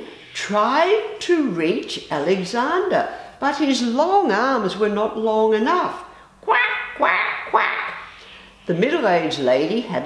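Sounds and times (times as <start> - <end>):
woman imitating duck quacks: 6.4 - 8.1.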